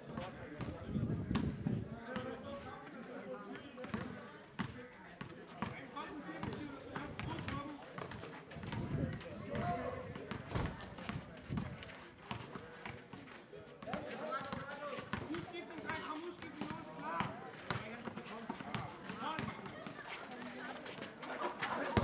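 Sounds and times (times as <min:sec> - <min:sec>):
basketball bouncing on pavement: 0:00.1 - 0:01.6, 0:03.8 - 0:05.8, 0:08.6 - 0:13.0, 0:13.8 - 0:19.7.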